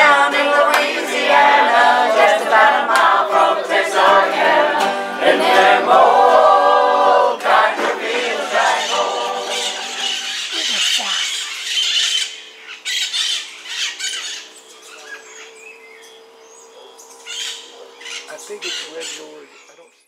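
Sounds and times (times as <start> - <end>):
steady low hum: 0.0 - 10.9
birds squawking and calling: 8.7 - 20.0.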